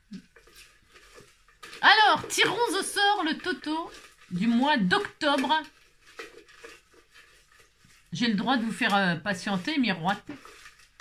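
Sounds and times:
paper slips rustling in glass jar: 0.1 - 11.0
light scrapes against glass: 5.3 - 8.2.

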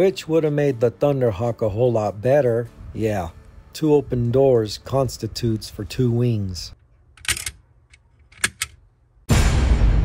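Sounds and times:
sharp plastic toy clicks: 7.2 - 7.6, 8.2 - 8.8.

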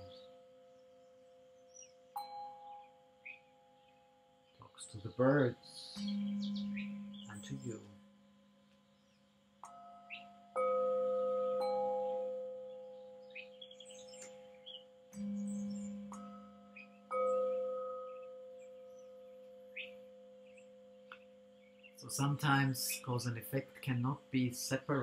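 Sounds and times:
birds chirping: 0.0 - 25.0
singing bowls struck ringing: 9.6 - 23.2.

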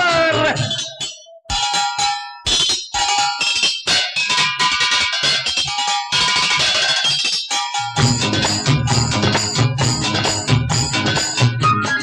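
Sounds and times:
instrumental film song music: 6.4 - 12.0.

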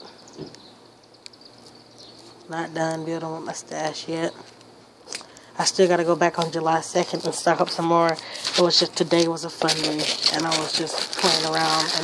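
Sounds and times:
high insect trill: 0.0 - 4.3.

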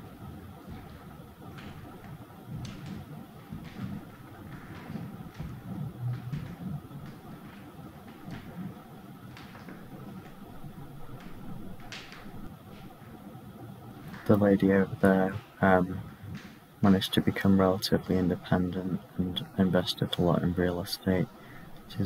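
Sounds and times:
footsteps on wooden floor: 0.0 - 13.2, 14.0 - 16.7.

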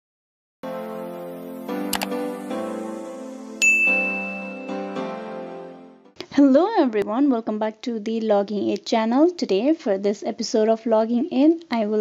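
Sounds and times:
background music: 0.6 - 7.3
electronic notification ding: 3.6 - 5.0.

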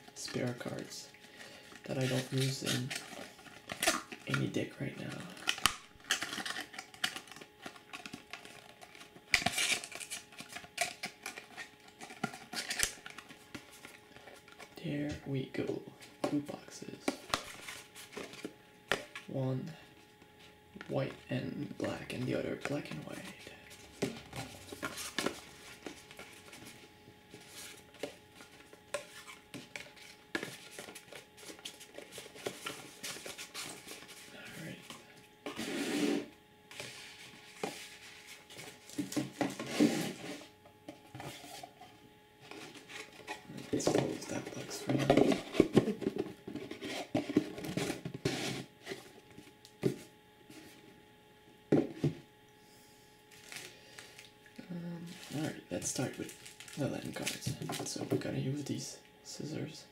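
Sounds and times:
cardboard sliding and shuffling: 35.5 - 40.5.

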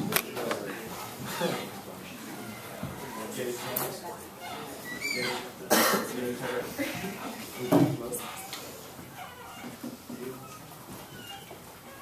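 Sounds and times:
person coughing: 5.7 - 6.2.

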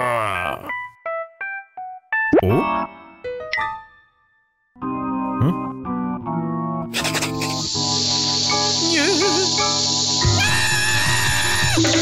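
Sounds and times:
background music: 0.0 - 12.0
cartoon bomb fuse hissing: 7.0 - 12.0.

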